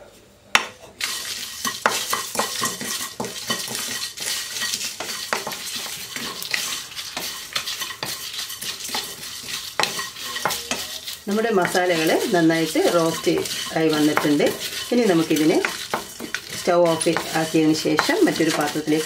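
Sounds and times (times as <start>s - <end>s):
spatula stirring spices in wok: 0.8s - 19.0s.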